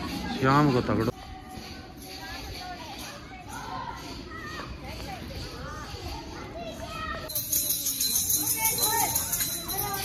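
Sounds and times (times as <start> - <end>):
children chattering and calling out: 0.0 - 10.0
high-pitched hissing jingle: 7.2 - 10.0.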